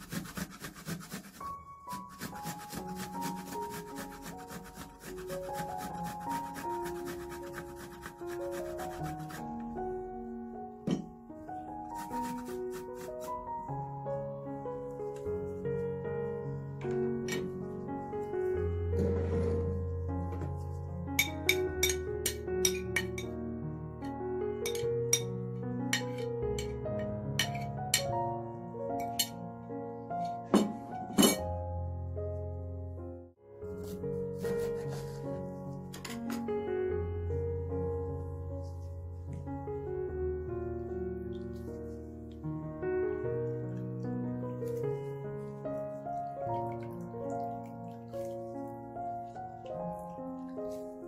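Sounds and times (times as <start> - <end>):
ginger grated on metal grater: 0.0 - 9.4, 11.9 - 13.4
spoon scraping mixture: 0.0 - 9.5, 11.9 - 13.4, 33.8 - 35.6
soft background music: 0.0 - 51.0.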